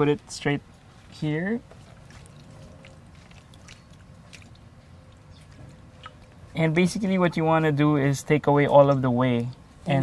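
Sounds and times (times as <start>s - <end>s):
wet squishing of curds: 0.2s - 7.2s
trickle of liquid: 0.8s - 6.6s.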